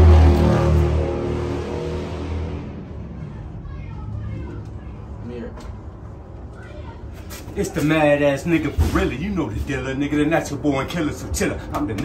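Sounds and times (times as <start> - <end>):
vehicle rumbling past: 0.0 - 7.0.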